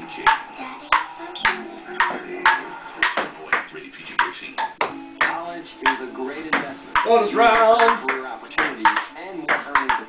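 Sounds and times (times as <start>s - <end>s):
ping pong ball clicking: 0.2s - 10.0s.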